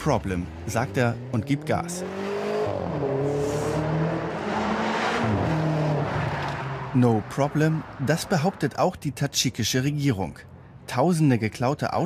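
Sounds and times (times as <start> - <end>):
car engine revving: 0.0 - 8.4.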